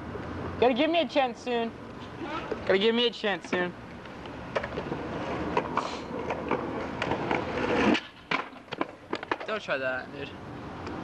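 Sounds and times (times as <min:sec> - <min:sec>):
skateboard wheels rolling on asphalt: 0:02.0 - 0:11.0
skateboard clacking on pavement: 0:04.5 - 0:09.7.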